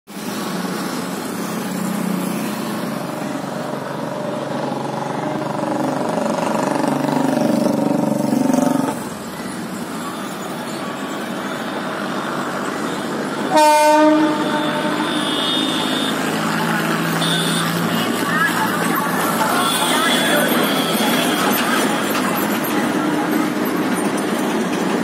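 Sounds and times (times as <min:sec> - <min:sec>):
engine running: 0:00.3 - 0:10.0.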